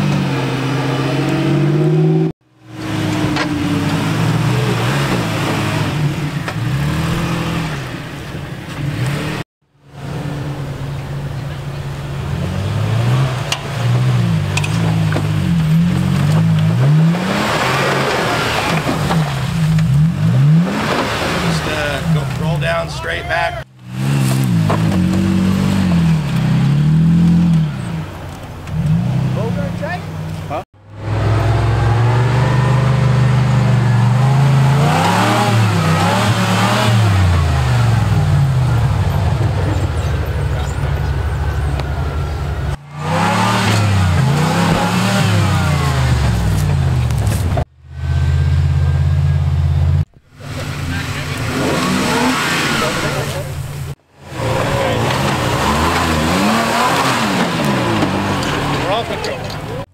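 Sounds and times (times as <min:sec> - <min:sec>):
pickup truck engines revving: 0:00.0 - 0:59.9.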